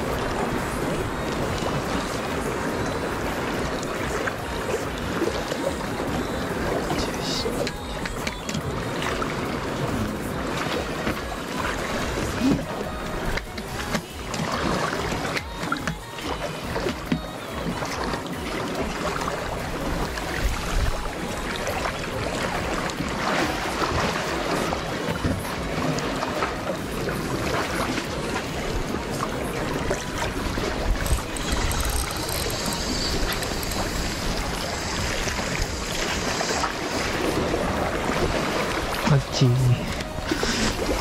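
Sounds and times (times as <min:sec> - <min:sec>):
background music: 0:00.0 - 0:41.0
sea water lapping against concrete: 0:00.0 - 0:41.0.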